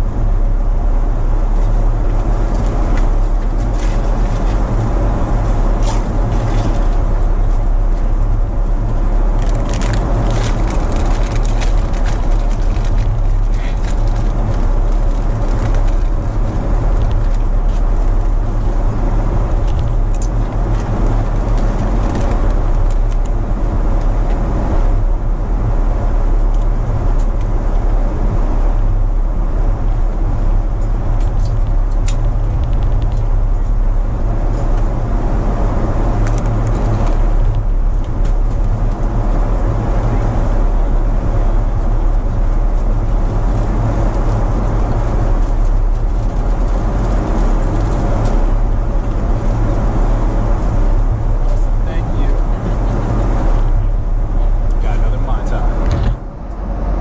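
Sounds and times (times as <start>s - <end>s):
airliner cabin drone: 0.0s - 57.0s.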